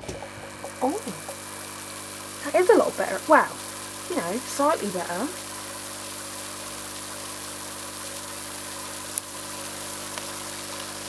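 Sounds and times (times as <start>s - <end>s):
aquarium air pump humming: 0.0s - 11.0s.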